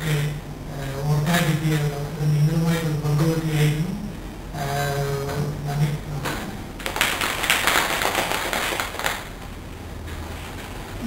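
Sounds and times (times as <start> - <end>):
audience applauding: 6.8 - 9.3.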